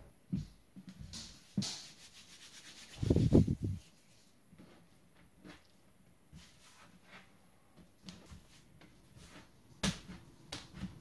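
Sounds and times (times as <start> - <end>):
hands rubbing together: 1.6 - 4.2.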